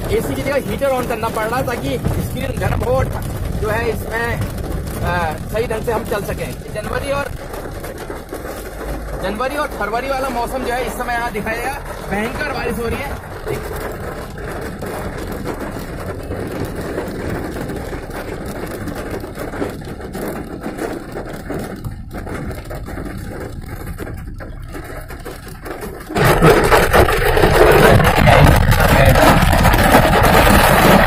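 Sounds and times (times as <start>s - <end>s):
heavy rain on a car: 0.0s - 31.0s.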